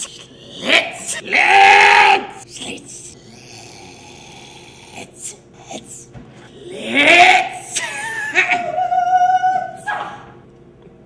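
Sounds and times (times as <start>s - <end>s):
man crying out loudly: 6.6s - 9.9s.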